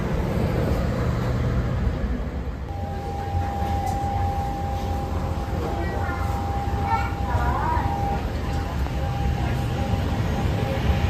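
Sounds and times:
machinery rumble with high whine: 0:00.0 - 0:11.0
faint voices: 0:02.7 - 0:11.0.

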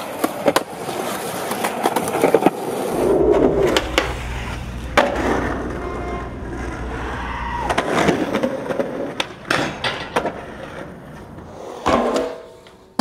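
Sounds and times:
skateboard clacks and slaps: 0:00.0 - 0:02.7, 0:07.8 - 0:13.0
wheels rolling on pavement: 0:00.0 - 0:12.8.

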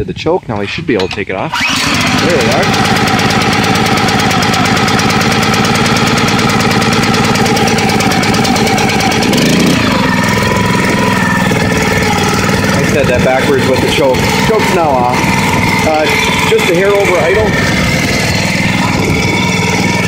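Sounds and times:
small engine running: 0:01.5 - 0:20.0.

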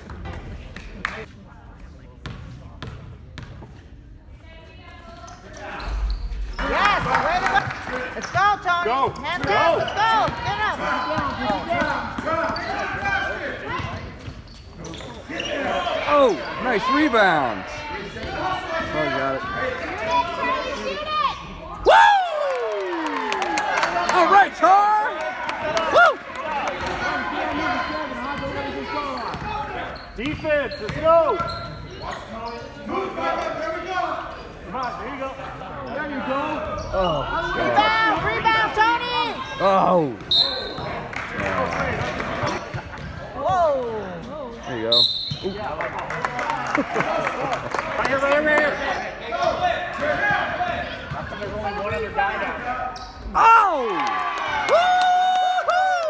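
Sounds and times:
sneakers squeaking: 0:02.2 - 0:03.9, 0:04.9 - 0:07.1, 0:09.0 - 0:17.1, 0:28.0 - 0:33.0, 0:34.2 - 0:41.0, 0:42.0 - 0:45.8, 0:49.3 - 0:52.1, 0:52.8 - 0:53.4.

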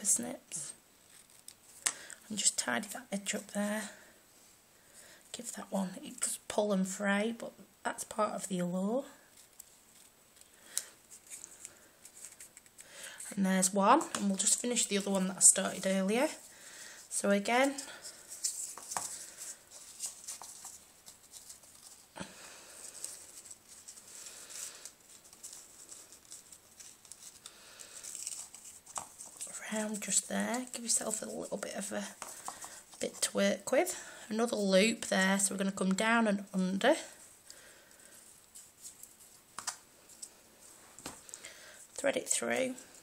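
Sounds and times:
paper rustling: 0:09.3 - 0:13.2, 0:17.6 - 0:33.4, 0:37.2 - 0:41.4.

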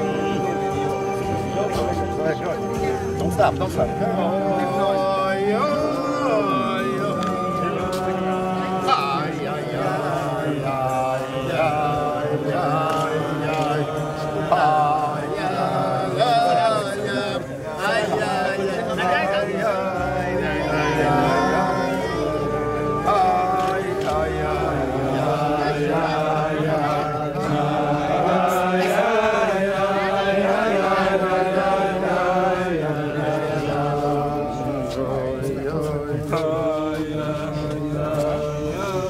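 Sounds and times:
men singing together: 0:03.3 - 0:39.0.

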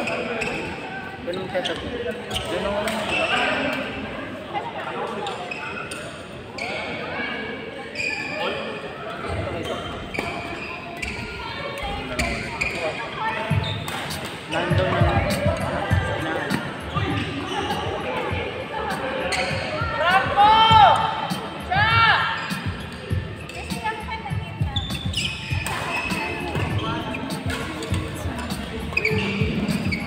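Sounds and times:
shoes squeaking on court: 0:00.0 - 0:03.7, 0:07.9 - 0:08.6, 0:09.2 - 0:19.9, 0:22.3 - 0:30.0.

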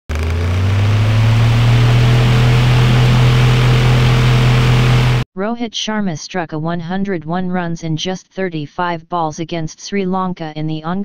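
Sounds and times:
low drone: 0:00.1 - 0:05.2.

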